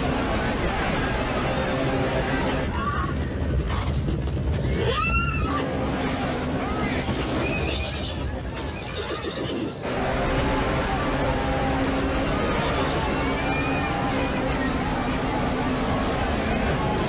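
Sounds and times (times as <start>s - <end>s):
crowd commotion and voices: 0.0s - 17.0s.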